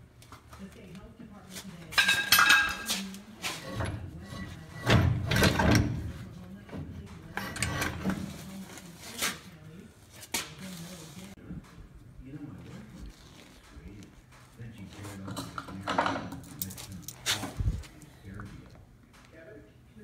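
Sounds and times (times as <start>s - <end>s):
metal clinks and knocks: 2.0s - 3.1s.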